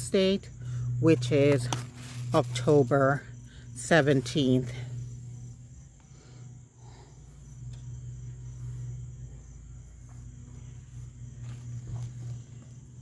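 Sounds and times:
insects chirping: 0.0 - 13.0
low steady hum: 0.0 - 13.0.

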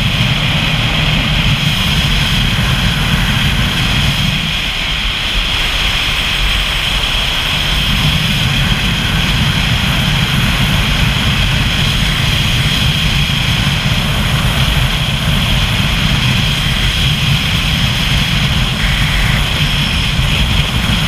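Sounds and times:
constant low rumble: 0.0 - 21.0
vehicle engine running: 0.0 - 21.0
wind rushing: 0.0 - 21.0.

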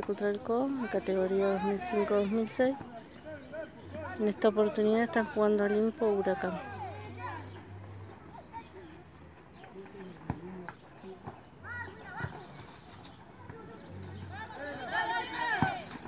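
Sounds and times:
open-air background noise: 0.0 - 16.0
players and onlookers shouting: 3.4 - 7.5, 14.2 - 16.0.

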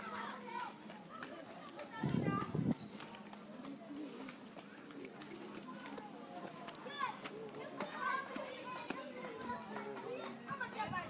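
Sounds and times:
children playing and calling out: 0.0 - 11.0
voices: 0.0 - 11.0.

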